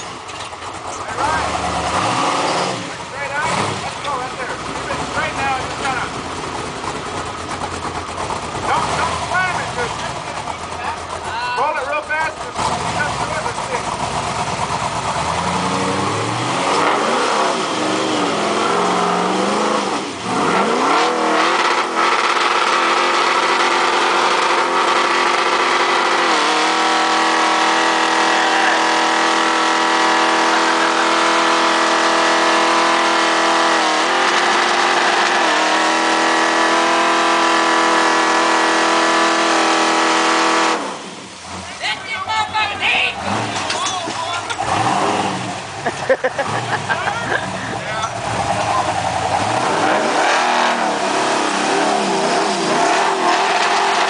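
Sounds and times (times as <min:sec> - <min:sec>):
engine revving at high revs: 0:01.1 - 0:07.0, 0:07.7 - 0:11.0, 0:11.9 - 0:41.6, 0:43.2 - 0:43.7, 0:44.6 - 0:54.0.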